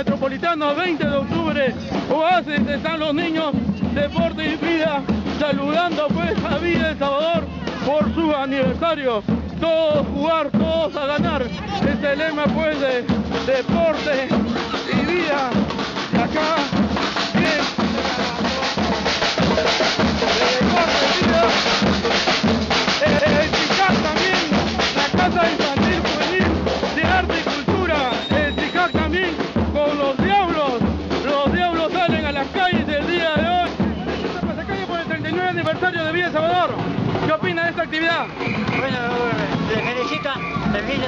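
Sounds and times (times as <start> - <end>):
snare drums playing fast beat: 0.0 - 41.0
voices: 0.0 - 41.0.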